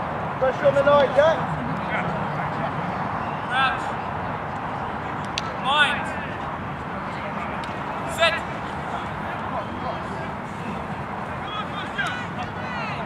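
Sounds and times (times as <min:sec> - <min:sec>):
open-air crowd noise: 0:00.0 - 0:13.0.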